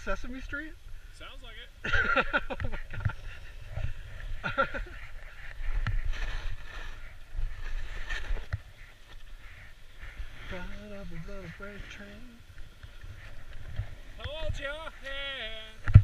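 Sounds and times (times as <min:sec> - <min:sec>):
wind rumble on microphone: 0:02.6 - 0:14.8
skis scraping over snow: 0:04.8 - 0:09.4.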